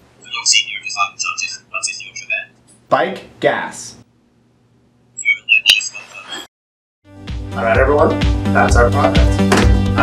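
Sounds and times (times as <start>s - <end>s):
high-pitched electronic chirps: 5.2s - 6.5s.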